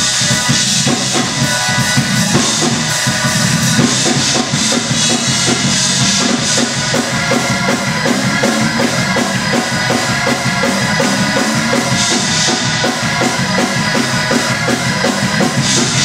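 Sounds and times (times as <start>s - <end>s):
drum kit fast beat: 0.0s - 16.0s
live church praise music: 0.0s - 16.0s.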